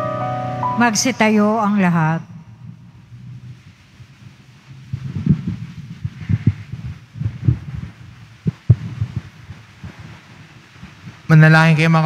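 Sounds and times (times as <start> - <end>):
low thuds and bumps: 4.8 - 11.0.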